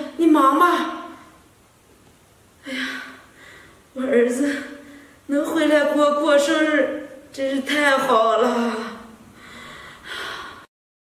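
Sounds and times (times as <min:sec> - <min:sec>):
woman's breathy exhale: 0:09.4 - 0:10.7.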